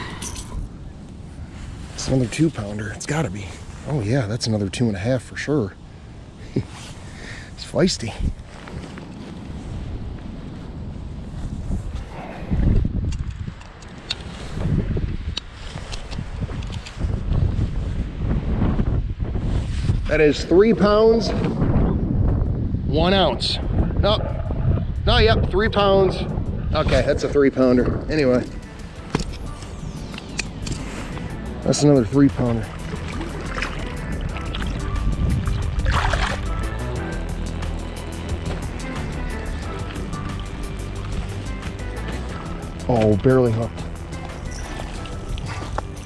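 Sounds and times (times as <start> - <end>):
wind buffeting microphone: 0.0 - 46.0
fishing gear clicks: 13.0 - 14.3, 28.9 - 31.4, 39.6 - 46.0.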